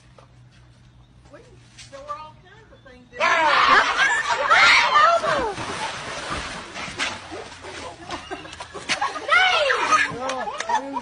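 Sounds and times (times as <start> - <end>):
pool water splashing: 3.2 - 11.0.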